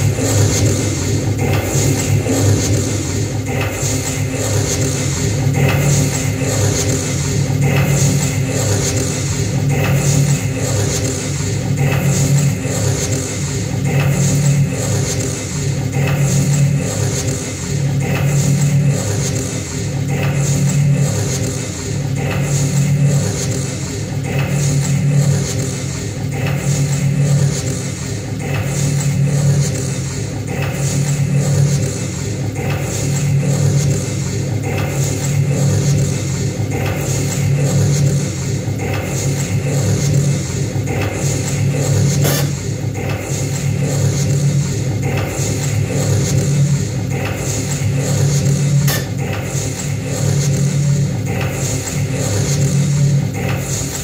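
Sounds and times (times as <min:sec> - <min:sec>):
electronic noise music: 0:00.0 - 0:27.3.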